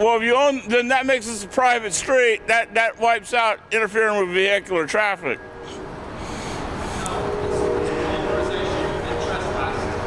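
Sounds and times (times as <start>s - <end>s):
steady whine: 0.0s - 10.0s
large vehicle rumbling past: 5.4s - 10.0s.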